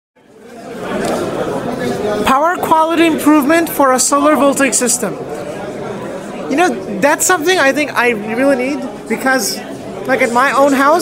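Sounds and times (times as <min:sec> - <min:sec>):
chatter of many voices: 0:00.2 - 0:11.0.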